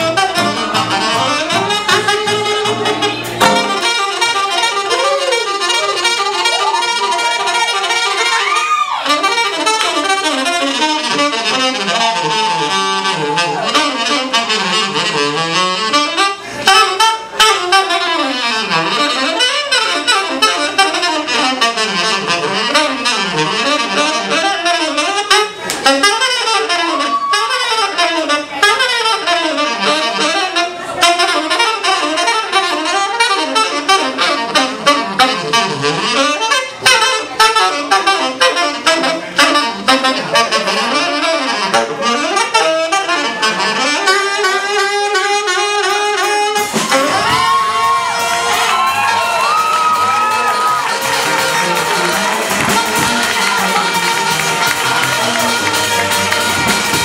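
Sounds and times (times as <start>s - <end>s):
plucked upright bass: 0.0s - 4.6s, 41.8s - 42.3s
saxophone playing fast line: 0.0s - 57.0s
sharp drum hits: 3.3s - 4.3s.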